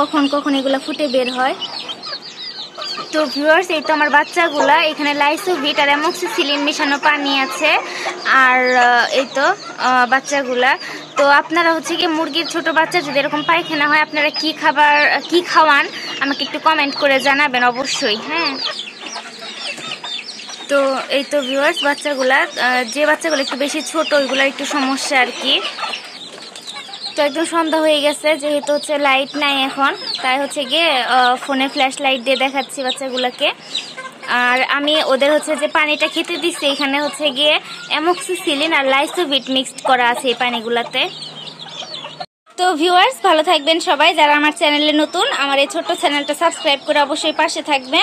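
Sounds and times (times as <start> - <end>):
woman speaking: 0.0 - 2.2, 2.8 - 18.8, 20.6 - 26.0, 27.1 - 41.2, 42.6 - 48.0
chicks peeping: 0.0 - 48.0.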